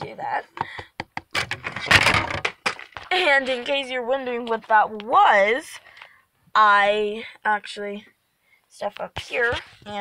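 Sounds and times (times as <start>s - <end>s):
noisy clatter: 1.2s - 4.8s.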